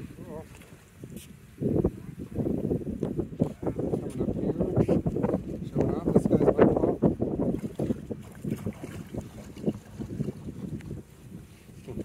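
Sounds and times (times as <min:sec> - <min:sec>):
wind buffeting microphone: 0:00.0 - 0:12.0
water moving: 0:03.3 - 0:12.0.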